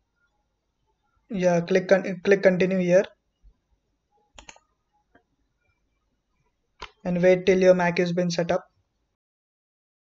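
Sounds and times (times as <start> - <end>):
computer mouse clicking: 4.3 - 4.7.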